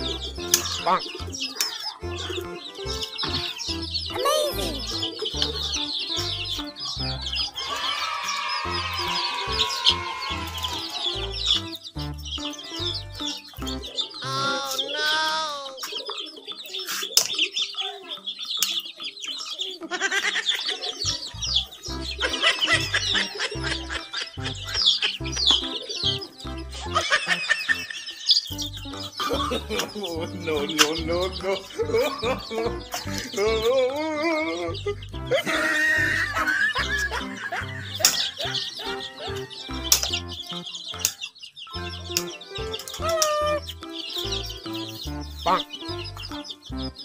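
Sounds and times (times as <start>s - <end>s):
background music with held notes: 0.0s - 47.0s
chicks peeping: 0.0s - 47.0s.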